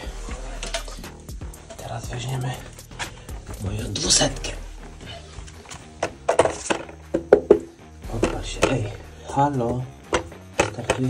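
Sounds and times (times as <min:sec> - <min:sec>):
bathroom scale knocking on floor: 0:07.1 - 0:08.8.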